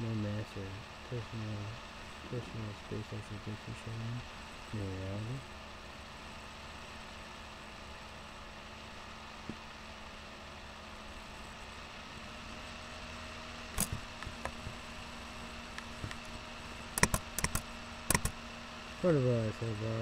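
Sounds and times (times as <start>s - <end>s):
steady background hum: 0.0s - 20.0s
computer mouse clicks: 13.8s - 14.8s, 17.0s - 18.4s.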